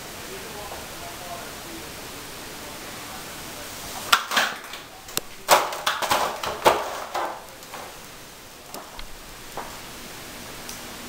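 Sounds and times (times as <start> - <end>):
steady hiss: 0.0 - 11.0
sharp knocks and clatters: 4.1 - 8.0.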